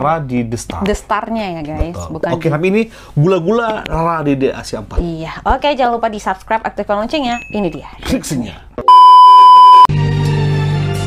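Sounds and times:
high-pitched test tone beep: 8.9s - 9.9s.

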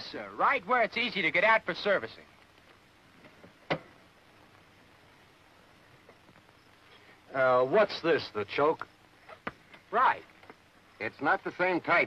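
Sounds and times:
faint film soundtrack hiss: 0.0s - 12.0s.

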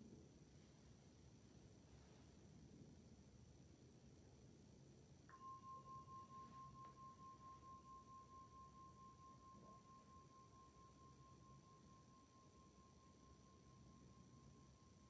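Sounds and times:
meditation bell ringing: 5.3s - 15.0s.

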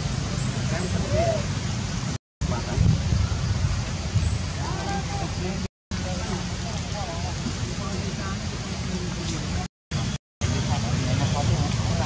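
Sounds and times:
low outdoor background noise: 0.0s - 12.0s
faint distant voices: 2.4s - 12.0s.

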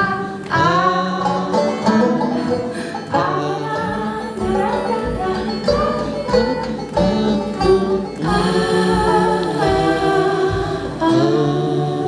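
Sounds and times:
live band playing: 0.0s - 12.0s
woman singing: 0.0s - 12.0s
kick drum beating: 3.8s - 12.0s.

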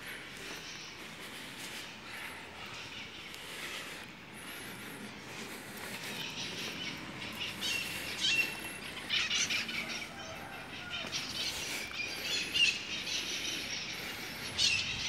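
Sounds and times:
faint outdoor background noise: 0.0s - 15.0s
small birds chirping: 0.0s - 15.0s.

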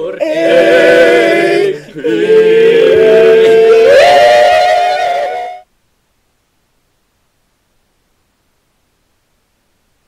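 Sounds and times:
young men singing together: 0.0s - 4.3s.

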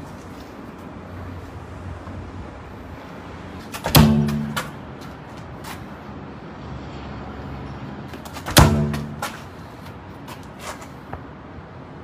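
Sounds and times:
boot kicking football: 3.7s - 4.8s, 8.2s - 9.5s.

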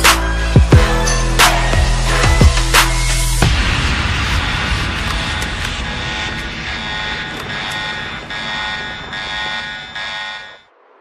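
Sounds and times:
sustained electronic drone: 2.8s - 11.0s.

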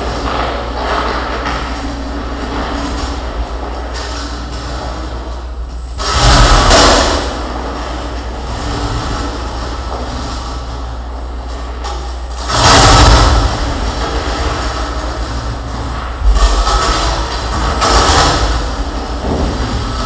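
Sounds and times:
harsh amplified metal noise: 0.0s - 20.0s.

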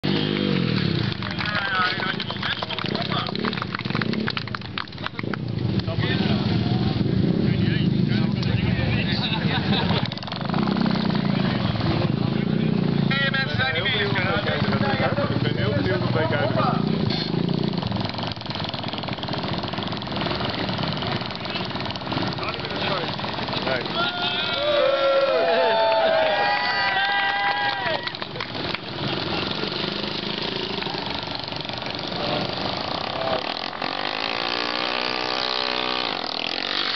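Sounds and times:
moped engines running: 0.0s - 36.9s
crowd chatter: 5.5s - 17.8s, 18.6s - 34.2s.

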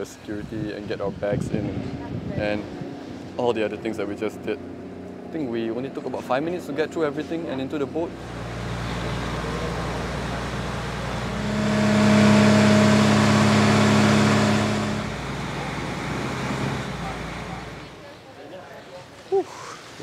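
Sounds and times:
wind: 0.0s - 20.0s
boat engine droning: 2.6s - 18.2s.

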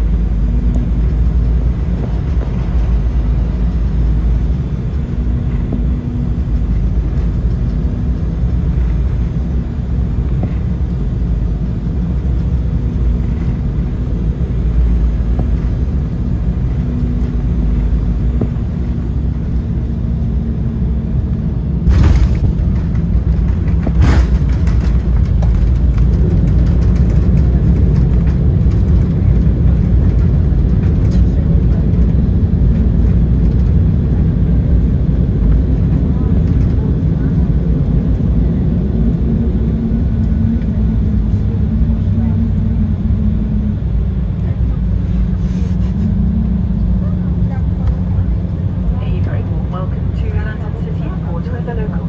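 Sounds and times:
deep rumble of jet engines: 0.0s - 52.0s
thump: 21.9s - 22.6s.

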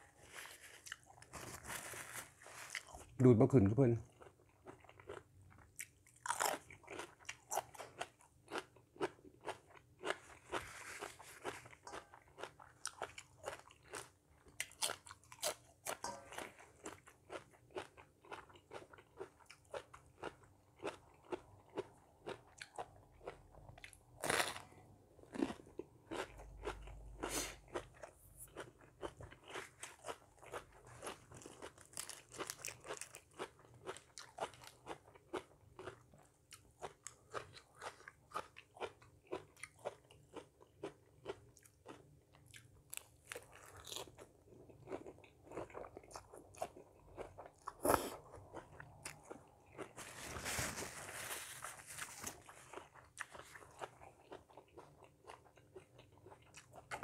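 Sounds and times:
person chewing crunchy vegetables: 0.0s - 3.2s, 3.8s - 57.0s.

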